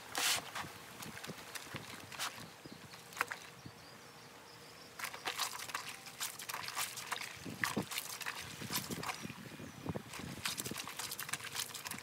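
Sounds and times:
wet clothes scrubbed by hand: 0.0 - 2.5, 5.0 - 9.4, 10.1 - 12.0.

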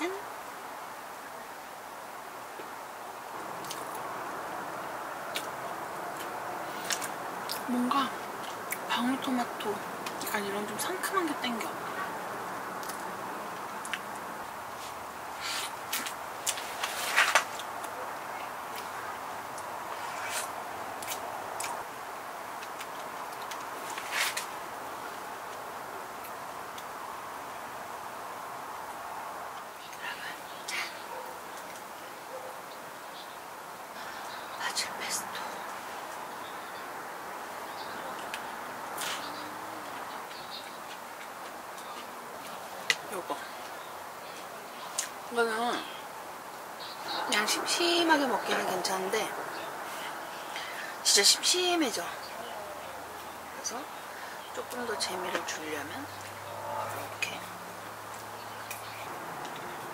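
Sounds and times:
steady low hiss: 0.0 - 59.9.

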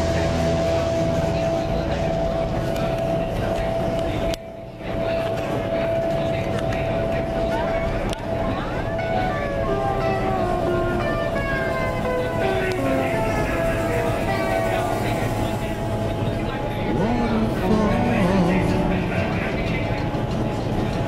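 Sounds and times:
music: 0.0 - 21.0
steady hum: 0.0 - 21.0
voices: 0.0 - 21.0.

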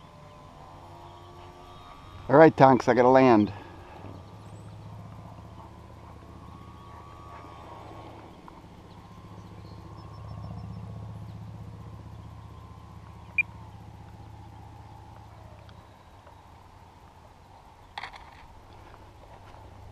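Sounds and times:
model airplane motor whine: 0.0 - 17.1.

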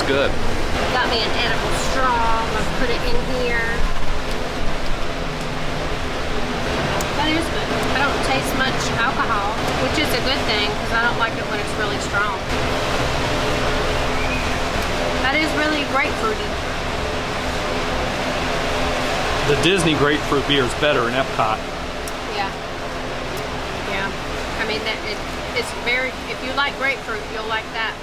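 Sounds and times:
electric fan running: 0.0 - 28.0.

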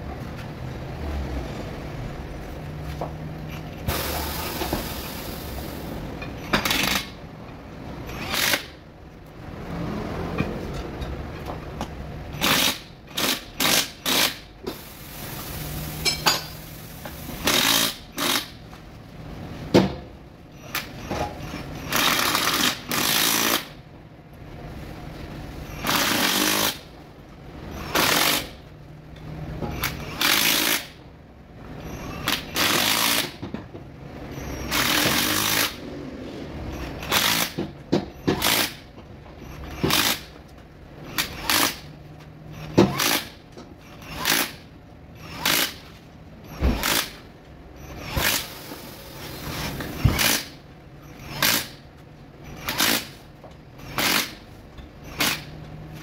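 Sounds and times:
impact wrench hammering bolts: 3.9 - 7.2, 34.7 - 35.8, 37.0 - 38.9, 39.6 - 40.4, 42.6 - 45.9, 49.5 - 50.6.

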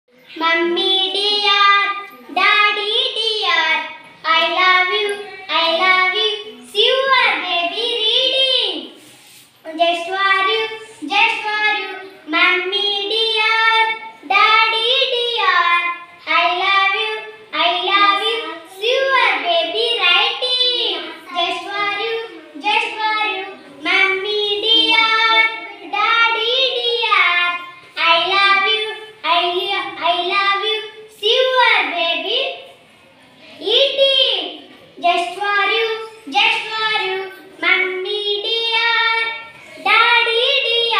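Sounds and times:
girl singing: 0.2 - 9.0, 9.6 - 32.4, 35.0 - 40.9
children singing: 17.6 - 28.8.

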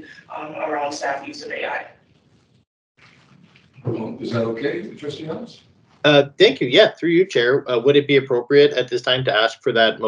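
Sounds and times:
faint audio feed hiss: 0.0 - 10.0
person speaking: 3.8 - 10.0.

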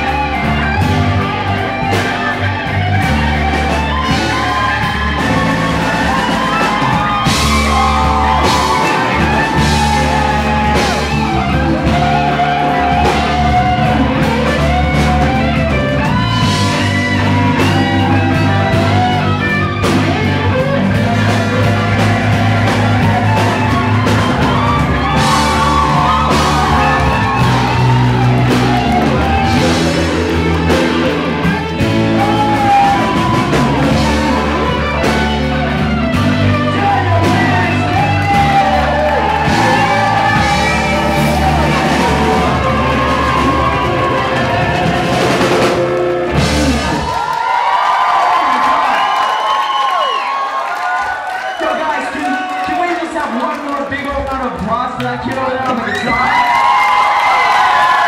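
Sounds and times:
live blues band playing: 0.0 - 47.3
audience cheering and whooping: 0.0 - 58.0.

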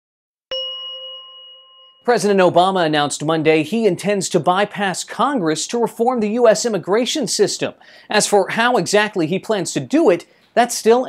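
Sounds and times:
bell-like ding: 0.5 - 2.4.

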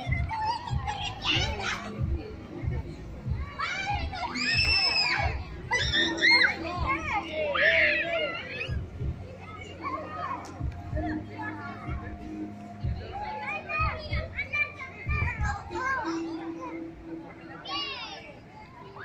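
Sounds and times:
children shouting and squealing: 0.0 - 19.0
faint music: 0.0 - 19.0.

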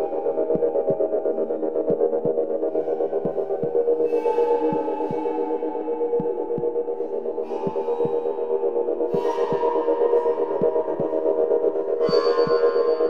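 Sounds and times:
bass drum beating in pairs: 0.0 - 5.4
ambient drone: 0.0 - 13.0
reverb-washed flute: 0.0 - 13.0.

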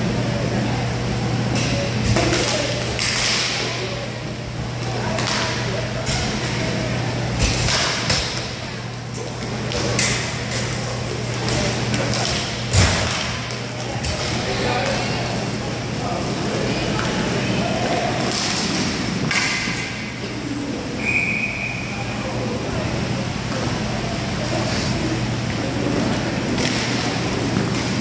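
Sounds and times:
low hum in hall: 0.0 - 28.0
hockey sticks clacking: 1.6 - 3.7, 5.1 - 6.6, 9.7 - 15.0, 17.8 - 20.0, 26.1 - 28.0.

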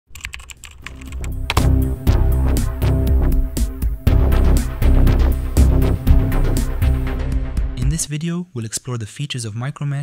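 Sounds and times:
sharp clicks: 0.1 - 1.8
electronic music with deep bass: 0.9 - 8.1.

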